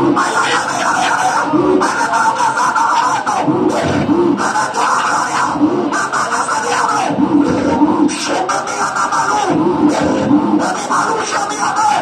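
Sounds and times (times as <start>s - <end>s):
congregation voices: 0.0s - 12.0s
loud worship music: 0.0s - 12.0s.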